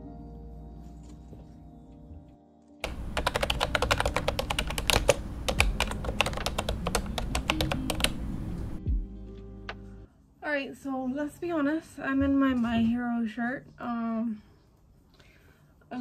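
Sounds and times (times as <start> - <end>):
soft lo-fi music: 0.0 - 15.2
rapid keyboard typing: 2.8 - 8.3.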